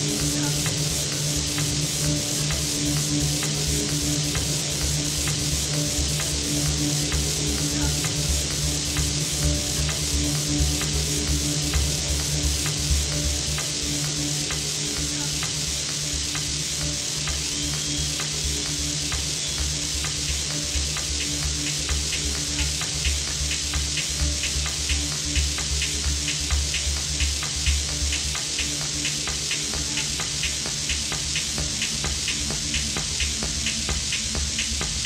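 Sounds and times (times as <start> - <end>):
loud hissing noise: 0.0 - 35.0
techno over sound system: 0.0 - 35.0.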